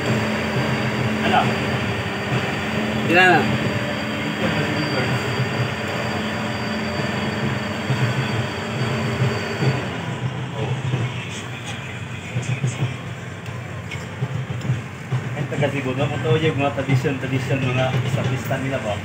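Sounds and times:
thin high whine: 0.0 - 11.8
crane mechanical drone: 0.0 - 14.2
scattered clicks and knocks: 10.8 - 16.2, 16.9 - 18.8.

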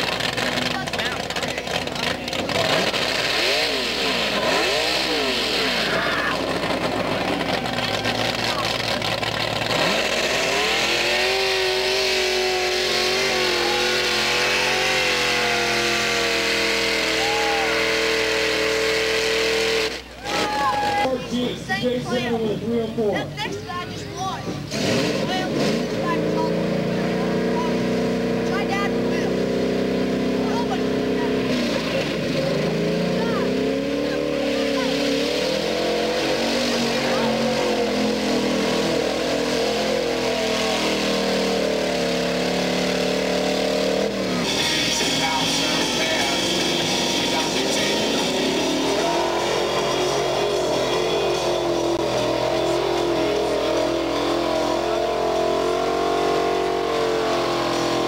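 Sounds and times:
engine revving: 0.0 - 23.5, 24.2 - 58.0.

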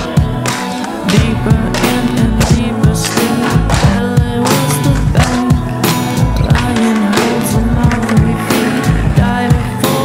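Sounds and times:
skateboard deck hitting concrete: 0.0 - 9.7
music with steady drum beat: 0.0 - 10.0
skateboard wheels rolling: 5.9 - 10.0.

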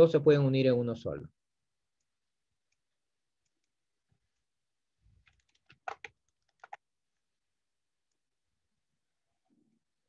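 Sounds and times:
computer keyboard clicks: 5.2 - 6.8.

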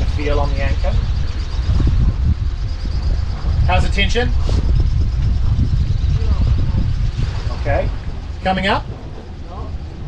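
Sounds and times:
boat engine running: 0.0 - 10.0
wind buffeting microphone: 0.0 - 10.0.

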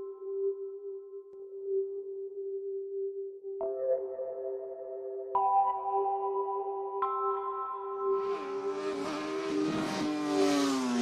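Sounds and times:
sustained synthesizer tones: 8.2 - 11.0.

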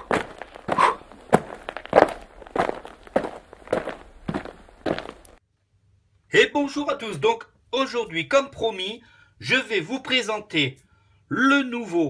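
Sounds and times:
footsteps walking: 0.0 - 5.4.

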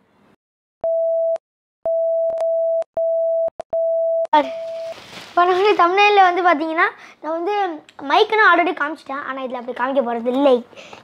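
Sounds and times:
electronic test tone: 0.9 - 5.0.

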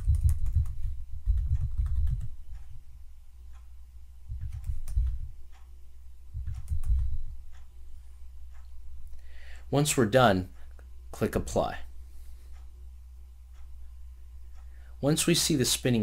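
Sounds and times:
computer keyboard typing: 0.0 - 2.7, 4.3 - 5.2, 6.4 - 7.2.

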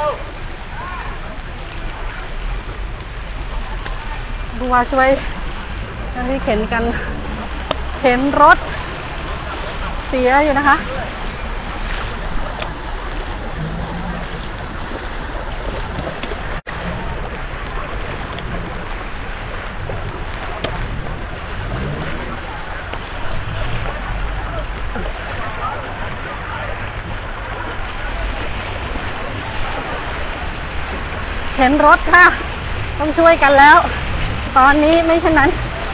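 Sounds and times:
floodwater rushing: 0.0 - 35.9
people wading through water: 0.0 - 35.9
wind rumbling on microphone: 0.0 - 35.9.

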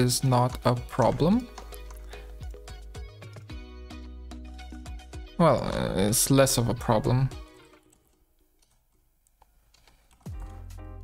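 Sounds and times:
computer keyboard clicks: 0.4 - 2.6, 7.7 - 10.6.

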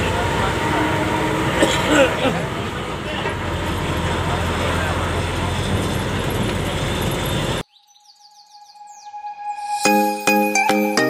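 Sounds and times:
bus engine and road noise: 0.0 - 7.6.

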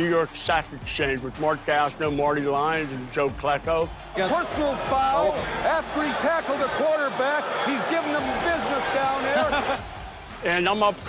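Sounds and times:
man announcing: 0.0 - 9.8.

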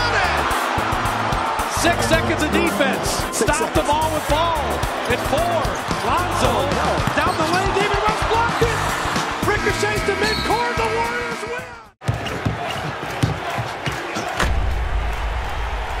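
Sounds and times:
arena crowd shouting: 0.0 - 16.0
bass-heavy music sting: 1.7 - 3.4
game-ending horn: 9.5 - 11.8.

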